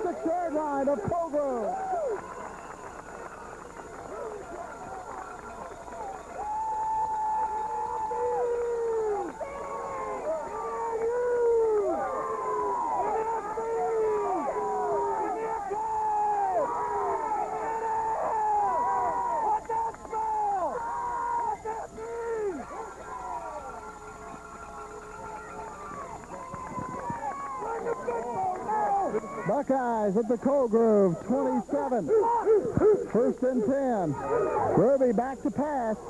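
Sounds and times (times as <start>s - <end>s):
crowd yelling drawn-out calls: 0.0s - 36.0s.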